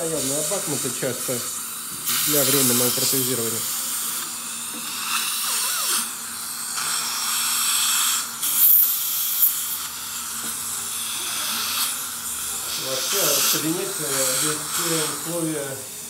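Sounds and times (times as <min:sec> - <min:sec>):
saliva ejector suction hissing: 0:00.0 - 0:16.0.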